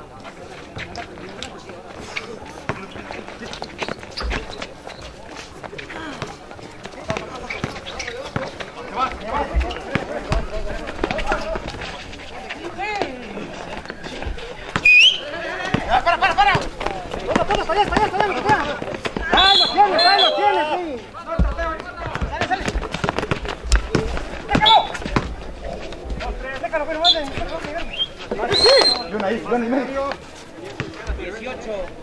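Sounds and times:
people talking and shouting: 0.0s - 32.0s
running footsteps: 0.1s - 32.0s
basketball bouncing on concrete: 6.1s - 11.8s, 13.8s - 15.0s, 15.6s - 19.8s, 21.4s - 25.5s.

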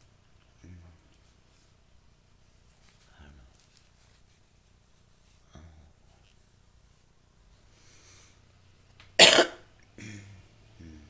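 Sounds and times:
person coughing: 9.2s - 10.2s.

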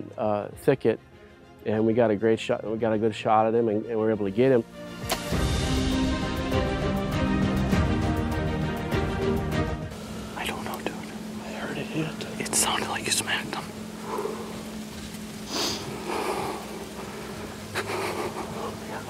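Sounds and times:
background music: 0.0s - 19.0s
faint steady hum: 9.9s - 19.0s
man whispering excitedly: 10.4s - 13.7s, 18.6s - 19.0s
man breathing: 14.0s - 19.0s.

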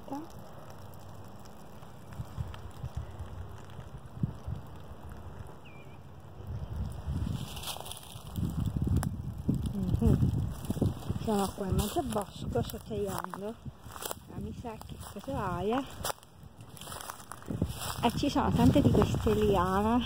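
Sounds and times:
wind on microphone: 2.0s - 20.0s
footsteps in dry leaves: 6.8s - 20.0s.

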